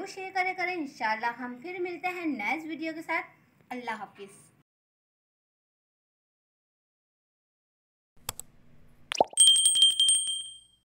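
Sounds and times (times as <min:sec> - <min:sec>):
small bell ringing rapidly: 0:09.3 - 0:10.8.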